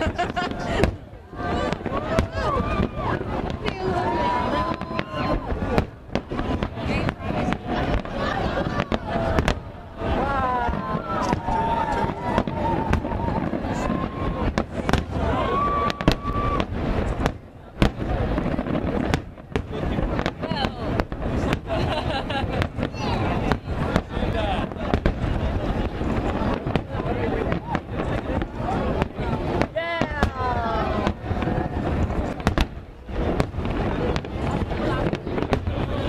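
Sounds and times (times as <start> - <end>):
fireworks bangs and crackle: 0.0 - 36.0.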